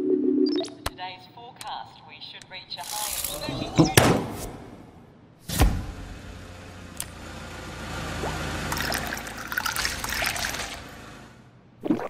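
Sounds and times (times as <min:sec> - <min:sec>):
liquid pouring into a glass: 0:08.2 - 0:10.8.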